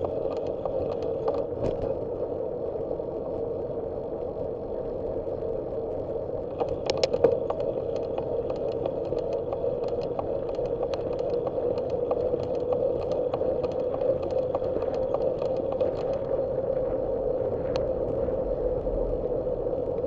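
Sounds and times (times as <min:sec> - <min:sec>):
bicycle clicks and rattles: 0:00.0 - 0:01.8, 0:06.5 - 0:16.3
wind and road noise: 0:00.0 - 0:20.0.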